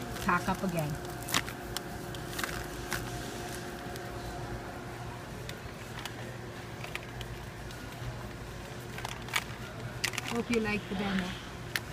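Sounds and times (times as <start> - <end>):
warehouse store background hum: 0.0 - 11.9.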